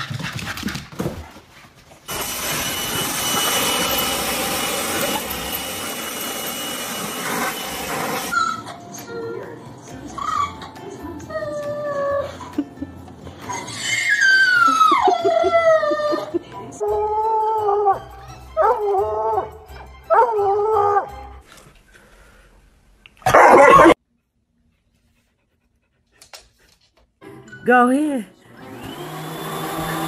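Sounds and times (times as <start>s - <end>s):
loud burst of noise: 2.1s - 8.3s
dog howling: 16.9s - 21.2s.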